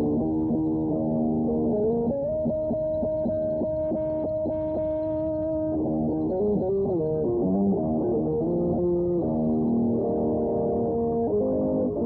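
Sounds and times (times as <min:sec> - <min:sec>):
electric guitar melody: 0:00.0 - 0:12.0.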